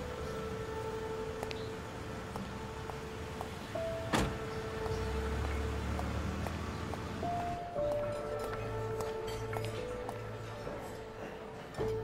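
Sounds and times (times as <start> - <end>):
car engine rumbling: 0.0 - 9.0
soft sustained music notes: 0.0 - 12.0
car door slamming: 4.0 - 4.6.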